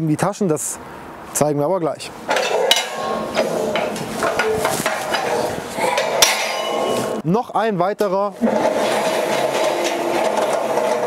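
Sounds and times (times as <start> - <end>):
metal basket scraping on paving: 2.3 - 7.2, 8.4 - 11.0.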